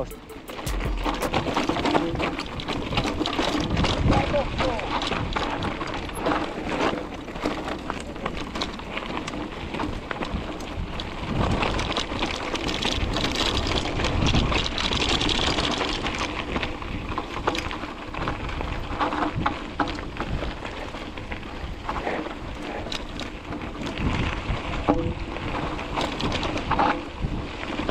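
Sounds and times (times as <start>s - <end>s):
bike clicks and rattles: 0.0s - 27.9s
bike tyres crunching on gravel: 1.4s - 27.9s.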